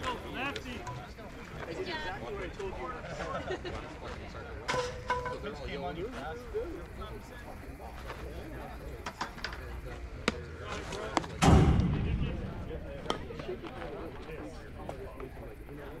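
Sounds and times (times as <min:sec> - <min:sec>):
firework boom: 0:11.4 - 0:12.8.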